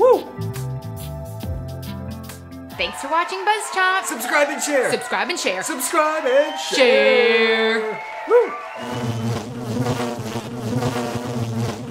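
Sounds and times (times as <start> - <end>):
housefly buzzing: 8.8 - 11.9.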